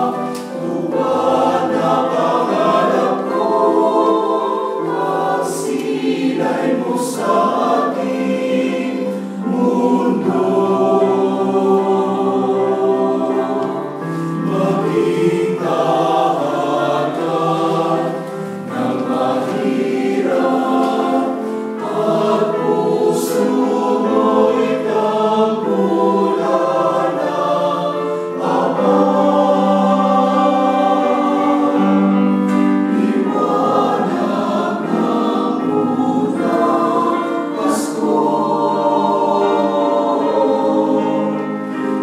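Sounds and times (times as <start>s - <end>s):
mixed choir singing chords: 0.0s - 42.0s.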